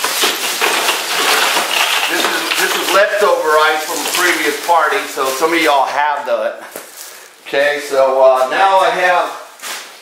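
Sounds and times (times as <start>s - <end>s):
ice cubes clattering into a chest: 0.0s - 5.7s.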